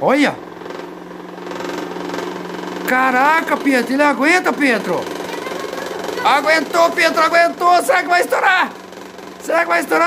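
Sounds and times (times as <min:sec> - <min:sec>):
electric fan motor whirring: 0:00.0 - 0:10.0.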